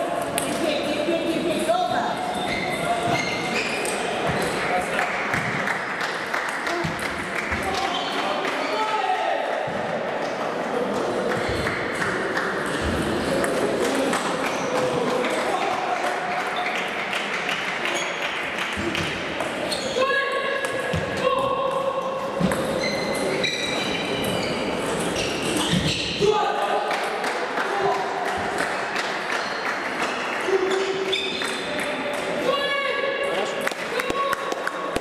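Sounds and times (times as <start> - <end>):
chatter in echoing hall: 0.0 - 35.0.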